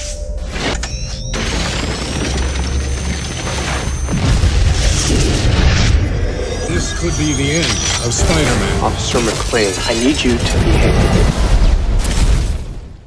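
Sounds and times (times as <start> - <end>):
high whine: 0.0 - 10.8
trailer music: 0.0 - 12.0.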